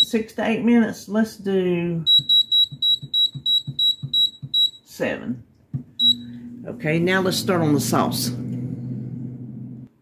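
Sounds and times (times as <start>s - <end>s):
short high beeps: 2.1s - 4.8s, 6.0s - 6.3s.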